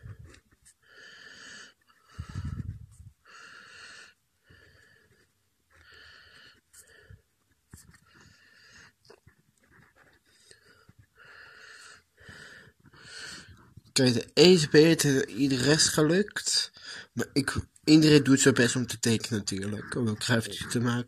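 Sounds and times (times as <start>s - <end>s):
wheezy breathing: 0.0s - 9.0s, 9.7s - 13.8s, 16.7s - 17.2s.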